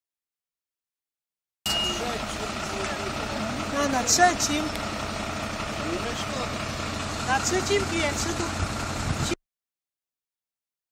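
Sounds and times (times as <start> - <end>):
people talking: 1.7 - 4.8, 5.8 - 6.6, 7.2 - 8.6, 9.2 - 9.4
diesel engine idling: 1.7 - 9.4.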